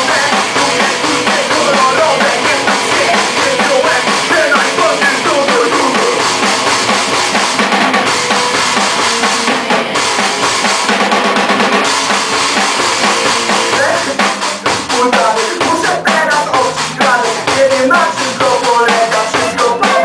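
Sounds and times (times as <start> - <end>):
person singing: 0.0 - 6.4, 13.1 - 20.0
rapid drum strokes: 0.0 - 20.0
rock band playing: 0.0 - 20.0.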